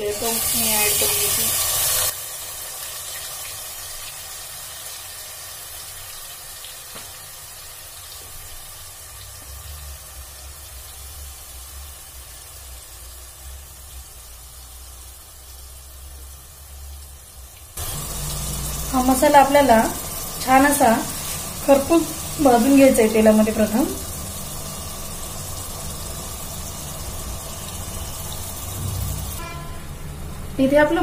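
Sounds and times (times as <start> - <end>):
oil sizzling in a pan: 0.0 - 29.8.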